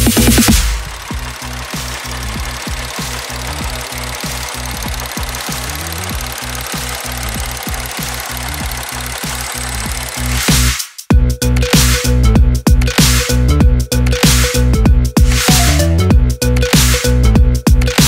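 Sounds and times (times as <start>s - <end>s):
car engine idling: 0.0s - 10.7s.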